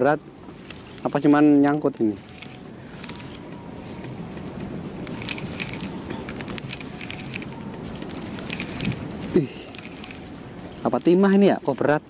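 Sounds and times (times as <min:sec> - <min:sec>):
wind: 0:00.0 - 0:12.0.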